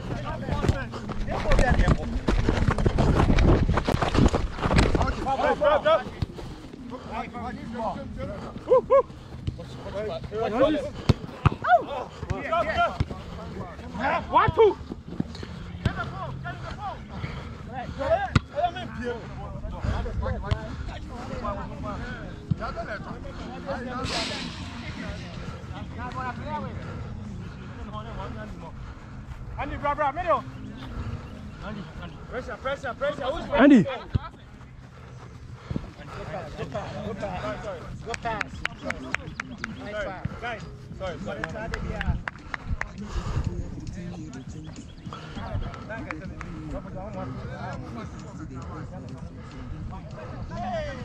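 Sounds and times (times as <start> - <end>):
microphone rumble and knocking: 0.6 - 5.1
players calling and shouting: 5.0 - 41.7
rush of noise: 24.0 - 26.3
low rumble: 24.0 - 26.6.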